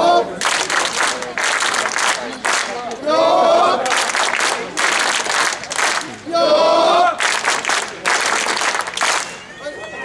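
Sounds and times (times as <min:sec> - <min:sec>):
crowd clapping hands: 0:00.4 - 0:03.0, 0:03.8 - 0:06.2, 0:07.2 - 0:09.5.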